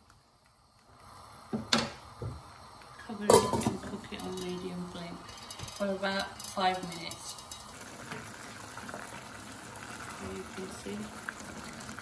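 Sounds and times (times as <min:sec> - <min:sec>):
metal knocks on steel pot: 0:03.3 - 0:03.8
lid clanking on pot: 0:03.3 - 0:04.6.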